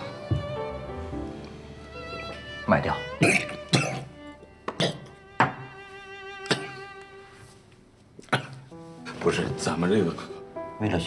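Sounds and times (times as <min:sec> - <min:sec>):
soft music with bowed strings: 0:00.0 - 0:07.8, 0:08.7 - 0:11.0
man coughing: 0:03.2 - 0:04.1.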